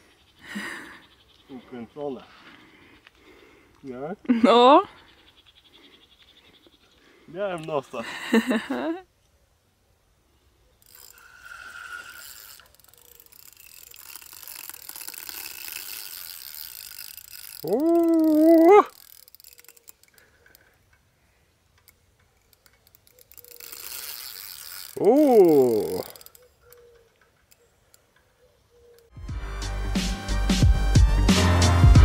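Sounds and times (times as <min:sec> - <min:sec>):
fishing reel ratchet clicking: 0:10.8 - 0:20.8, 0:21.7 - 0:28.1
person humming: 0:17.6 - 0:19.0, 0:25.0 - 0:26.2.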